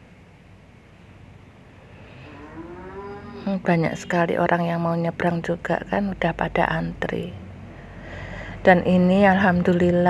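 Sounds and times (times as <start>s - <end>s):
scooter engine humming: 1.8s - 3.9s
long rising pitched call: 1.9s - 3.5s.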